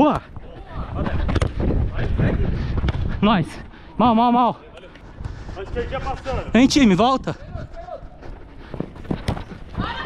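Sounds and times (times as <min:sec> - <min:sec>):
running footsteps on turf: 0:05.0 - 0:10.0
ball touches dull thuds: 0:08.3 - 0:09.9.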